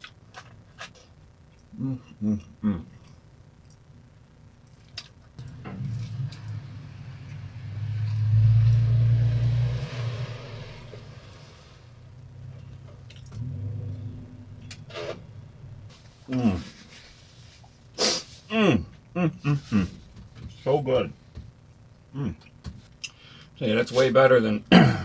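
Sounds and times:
car driving past: 0:05.4 - 0:15.9
fainter vehicle rumble: 0:05.4 - 0:17.1.

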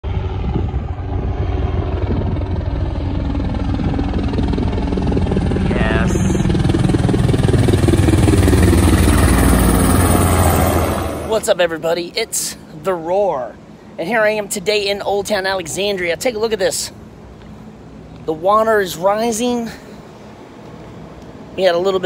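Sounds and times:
helicopter rotor chop: 0:00.0 - 0:12.5.

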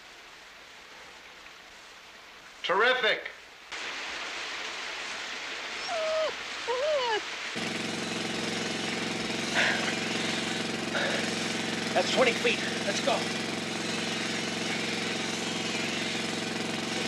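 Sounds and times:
fuse hissing: 0:03.8 - 0:17.0
motor humming: 0:05.8 - 0:17.0.

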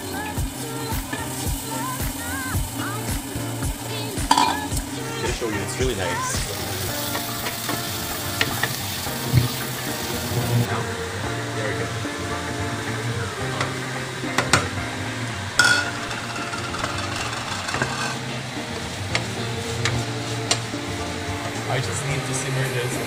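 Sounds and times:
food sizzling in a pot: 0:00.0 - 0:23.0
wooden spoon knocking on pot: 0:04.3 - 0:04.8.

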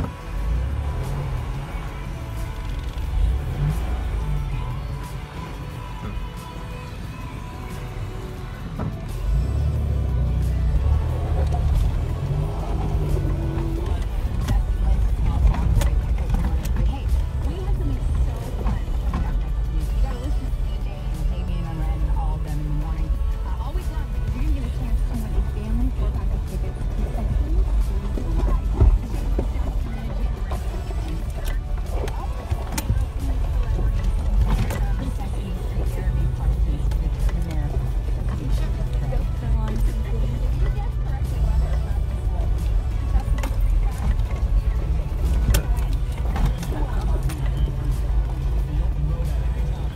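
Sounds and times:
engine and road rumble: 0:00.0 - 0:49.9
music: 0:00.0 - 0:49.9
people talking: 0:10.4 - 0:49.9.

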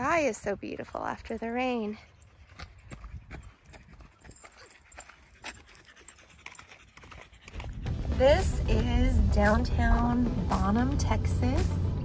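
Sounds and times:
faint footsteps on gravel: 0:00.2 - 0:10.8.

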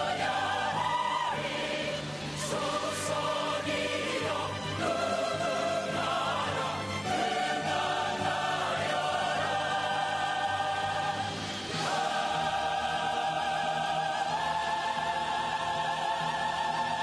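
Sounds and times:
chorus singing with vibrato: 0:00.0 - 0:17.0
orchestral accompaniment: 0:00.0 - 0:17.0.

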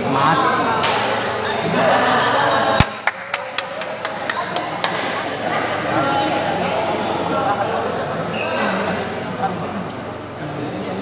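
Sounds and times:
voices in a hall: 0:00.0 - 0:11.0.

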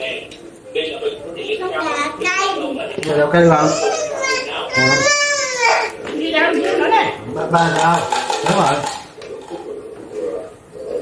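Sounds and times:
tableware clinking: 0:07.6 - 0:09.7.

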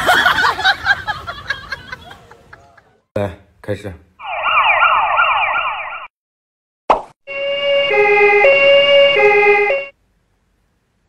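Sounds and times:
two-tone hi-lo siren: 0:04.2 - 0:06.1, 0:07.3 - 0:10.0
yelping siren: 0:04.2 - 0:06.1, 0:07.3 - 0:09.9
short pop: 0:06.9 - 0:07.2.

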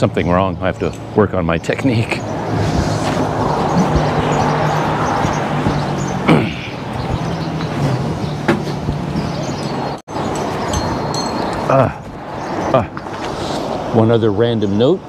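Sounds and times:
road and wind noise: 0:00.0 - 0:15.0.

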